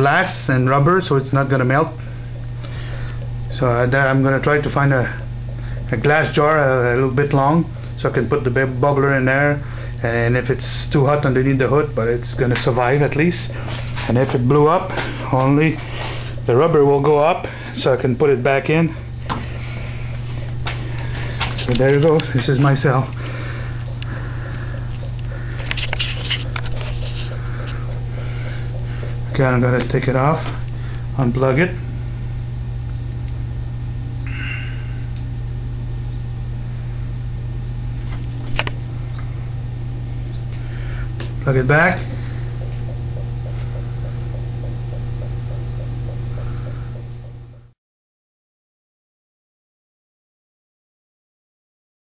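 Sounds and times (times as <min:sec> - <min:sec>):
low electrical hum: 0:00.0 - 0:47.8.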